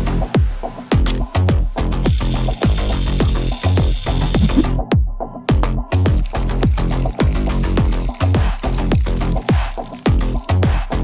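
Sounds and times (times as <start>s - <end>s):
electronic music with kick drum: 0.0s - 11.0s.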